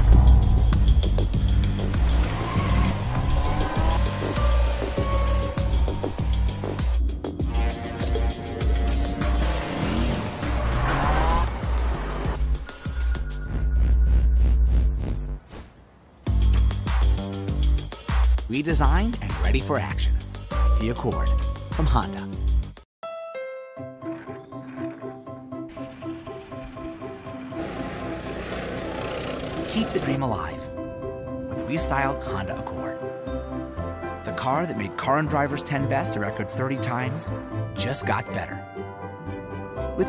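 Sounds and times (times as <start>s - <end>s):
music with pulsing bass beat: 0.0s - 15.4s
background music: 0.0s - 15.5s, 16.2s - 40.0s
car tyres squealing: 0.1s - 7.0s, 8.4s - 13.0s, 25.7s - 30.2s.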